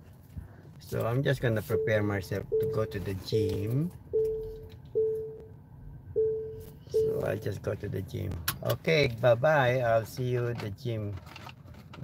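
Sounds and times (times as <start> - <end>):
car warning chime: 1.5 - 5.5, 6.1 - 7.6.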